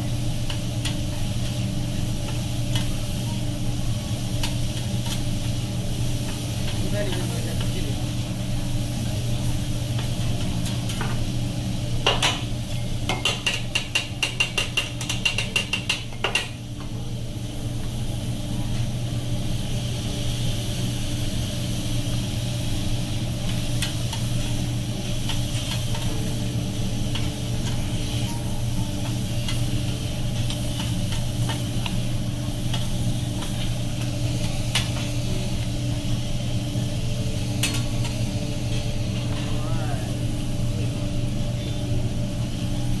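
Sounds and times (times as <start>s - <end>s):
food sizzling on griddle: 0.0s - 43.0s
steady low hum: 0.0s - 43.0s
metal spatulas clacking on griddle: 13.1s - 16.6s.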